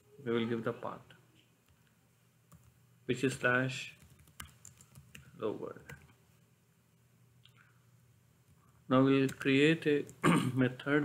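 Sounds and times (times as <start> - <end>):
faint computer keyboard keystrokes: 3.9 - 6.2.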